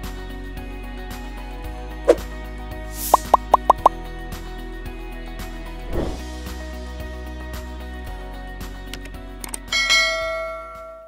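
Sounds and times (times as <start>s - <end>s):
background music: 0.0s - 10.9s
mouse clicks: 3.1s - 3.9s.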